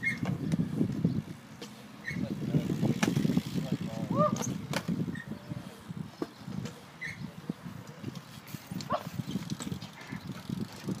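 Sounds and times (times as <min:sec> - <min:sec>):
bike clicks and knocks: 0:00.0 - 0:05.3, 0:06.1 - 0:07.2, 0:07.8 - 0:11.0
bike tyres rolling on concrete: 0:00.0 - 0:11.0.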